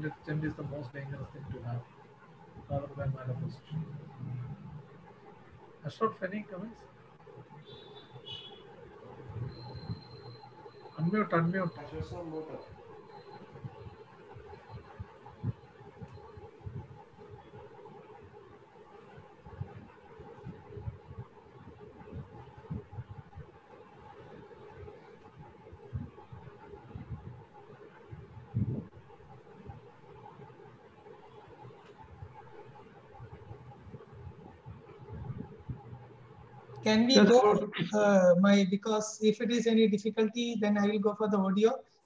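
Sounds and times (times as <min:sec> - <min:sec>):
steady low hum: 0:00.0 - 0:42.0
soft low thumps and rumbles: 0:09.2 - 0:10.3, 0:13.5 - 0:18.2, 0:19.4 - 0:30.6, 0:31.7 - 0:36.8.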